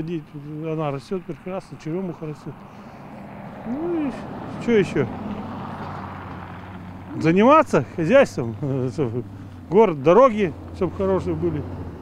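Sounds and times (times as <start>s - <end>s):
distant engine rumble: 0.0s - 12.0s.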